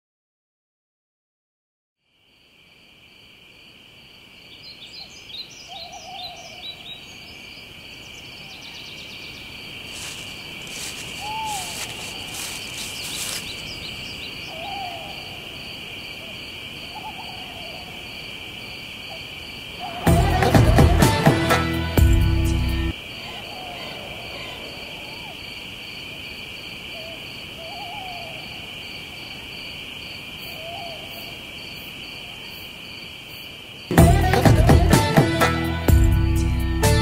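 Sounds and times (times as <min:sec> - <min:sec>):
high insect drone: 0:02.0 - 0:37.0
bird calls: 0:04.6 - 0:15.5, 0:16.2 - 0:18.0, 0:19.1 - 0:20.5, 0:22.9 - 0:25.7, 0:26.9 - 0:28.6
lower repeated call: 0:19.8 - 0:25.5.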